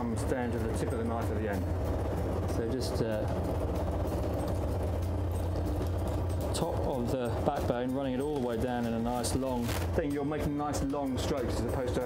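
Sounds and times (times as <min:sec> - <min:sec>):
boat engine droning: 0:00.0 - 0:12.0.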